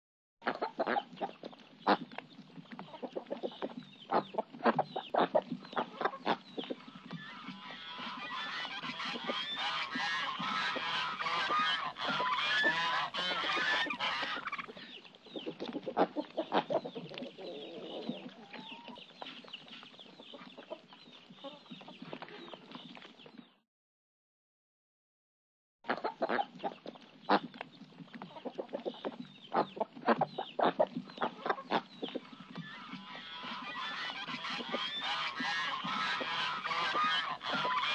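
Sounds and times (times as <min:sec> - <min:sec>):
chickens clucking: 0:00.4 - 0:23.5, 0:25.9 - 0:37.9.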